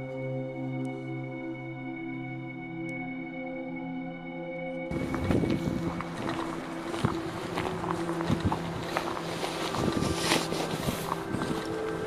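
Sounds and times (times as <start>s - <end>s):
low steady hum: 4.8s - 12.0s
footsteps crunching on debris: 4.9s - 12.0s
wind rumbling on microphone: 4.9s - 12.0s.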